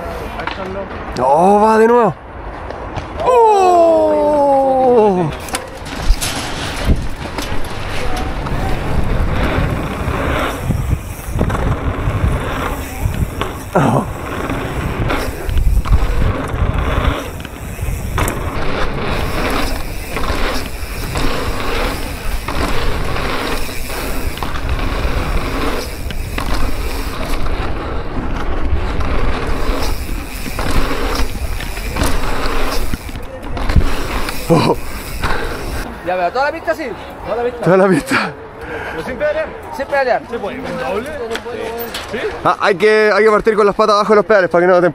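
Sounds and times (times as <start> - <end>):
bicycle tyres rolling on track: 0.0 - 38.2, 39.0 - 44.9
wind on camera: 3.2 - 35.9
bike knocking over bumps: 5.4 - 35.8.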